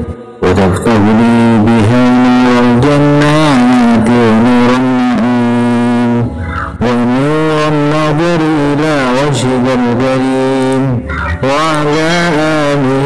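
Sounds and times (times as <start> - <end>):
steady low drone: 0.0 - 13.0.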